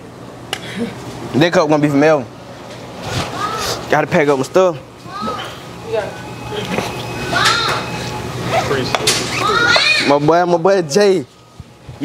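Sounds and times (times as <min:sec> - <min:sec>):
background chatter: 0:02.8 - 0:11.3
children calling out: 0:03.2 - 0:03.8, 0:05.0 - 0:05.7, 0:07.1 - 0:10.2.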